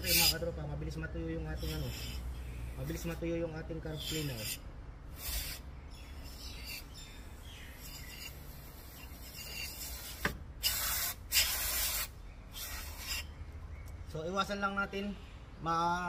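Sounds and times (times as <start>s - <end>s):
aerosol spray hissing: 5.2s - 5.6s, 9.5s - 13.2s.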